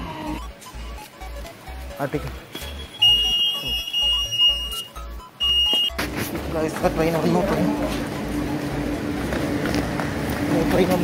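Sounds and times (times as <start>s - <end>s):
fare gate beeping: 0.2s - 9.4s.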